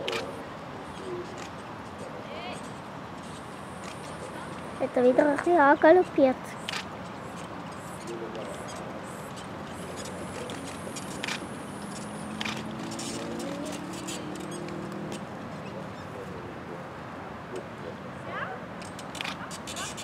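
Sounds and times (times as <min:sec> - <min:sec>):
outdoor background noise: 0:00.0 - 0:20.0
faint distant voices: 0:03.8 - 0:12.5, 0:15.2 - 0:20.0.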